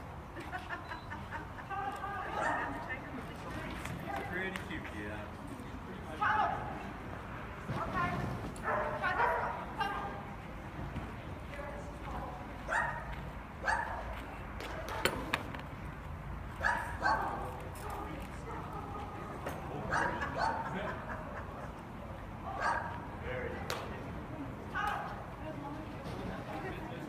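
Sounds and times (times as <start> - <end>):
dog barking: 8.6 - 9.6, 12.7 - 14.0, 16.6 - 17.4, 19.9 - 20.7, 22.5 - 23.0.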